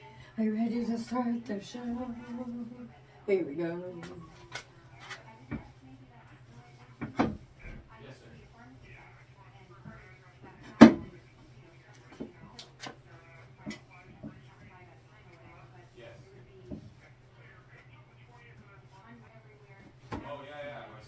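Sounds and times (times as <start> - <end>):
cloth wiping countertop: 1.8 - 3.0, 11.1 - 20.5
objects knocking on countertop: 7.0 - 7.4.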